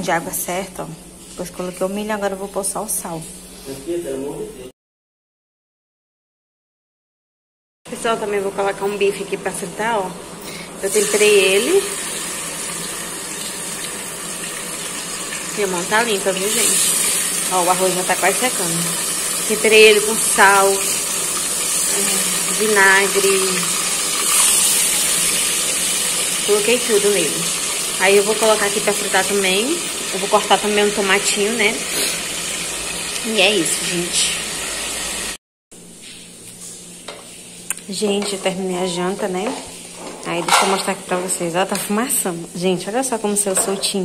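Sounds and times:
steak sizzling in a frying pan: 10.8s - 35.4s.

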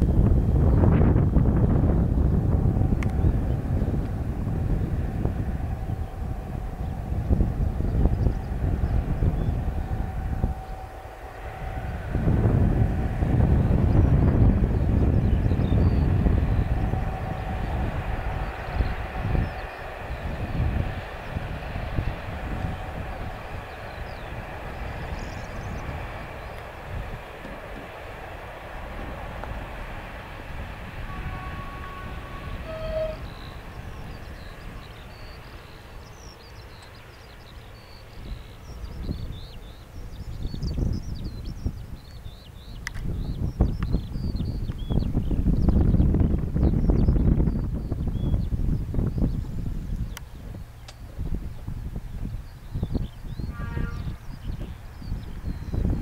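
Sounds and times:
freight train wagons rumbling: 0.0s - 56.0s
wind buffeting microphone: 0.0s - 56.0s.

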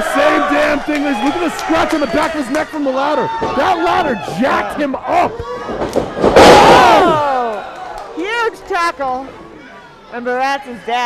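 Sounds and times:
bodies slamming into ring: 5.6s - 7.2s.

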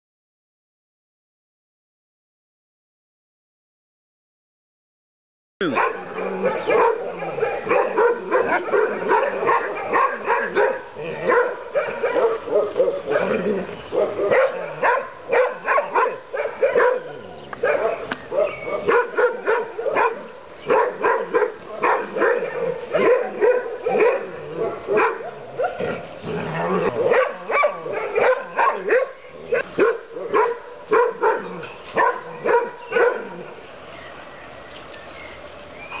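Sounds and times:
puppy barking: 5.6s - 26.0s, 26.6s - 33.4s.

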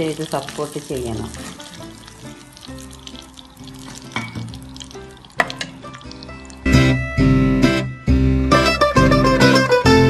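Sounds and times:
chicken sizzling in hot oil: 0.0s - 7.2s
faint background music: 0.0s - 10.0s
spoon knocking against pan: 4.1s - 4.6s, 5.4s - 6.2s.

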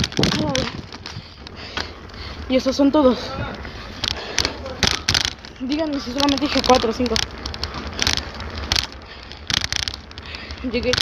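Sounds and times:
wind on microphone: 0.0s - 1.5s
bicycle rattling: 0.0s - 11.0s
steady low rumble: 0.0s - 11.0s.

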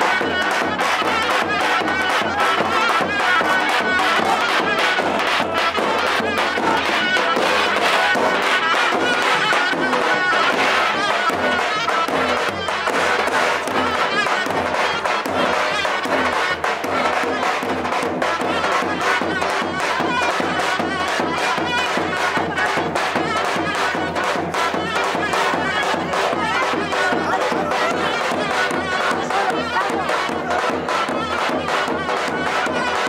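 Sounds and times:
crowd shouting: 0.0s - 33.0s.

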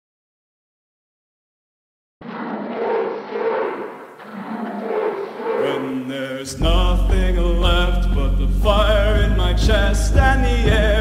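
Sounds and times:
rushing noise: 2.2s - 6.1s.

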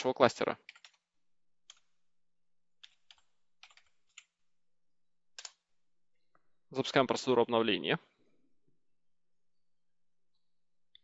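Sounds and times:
computer keyboard typing: 0.6s - 1.0s, 2.8s - 4.3s, 5.3s - 5.6s.

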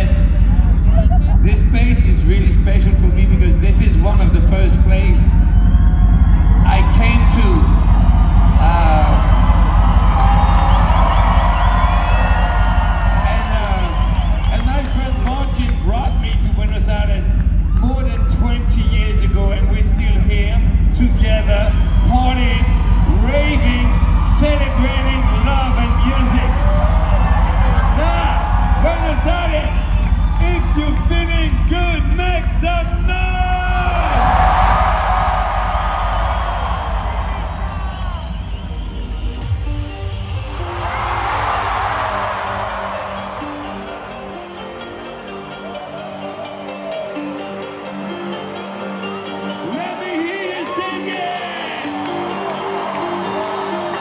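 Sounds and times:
low bass from sound system: 0.0s - 39.8s
crowd cheering and screaming: 4.0s - 54.0s
shout over loudspeakers: 22.3s - 37.7s, 49.6s - 52.7s.

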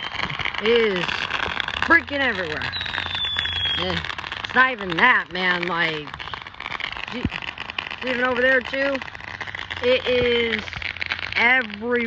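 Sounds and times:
distant fireworks crackling: 0.0s - 12.0s.

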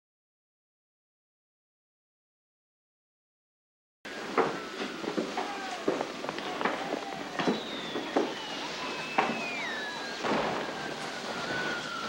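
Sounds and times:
high tone sliding downward: 4.1s - 12.0s
faint murmur: 4.2s - 12.0s.

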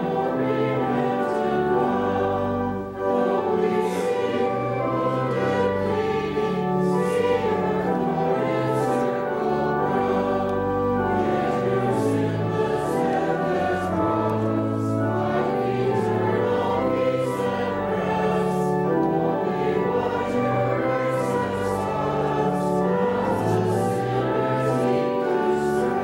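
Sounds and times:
choir singing slow held chords: 0.0s - 26.0s.

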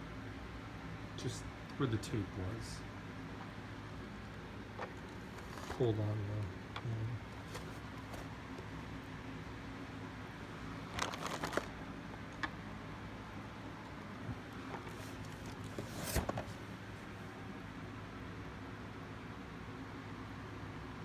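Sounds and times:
cardboard rustling and scraping: 4.8s - 6.0s, 7.3s - 8.6s, 10.8s - 11.8s, 14.6s - 16.6s
cardboard box being handled: 7.4s - 8.6s.

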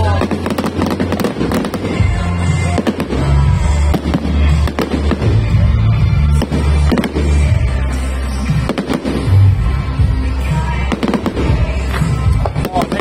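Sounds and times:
fireworks bursting and crackling: 0.0s - 13.0s
loud music with deep bass: 0.0s - 13.0s.

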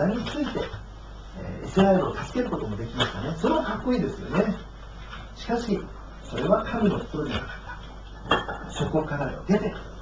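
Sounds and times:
man speaking: 0.0s - 4.7s, 5.4s - 7.8s, 8.7s - 10.0s.

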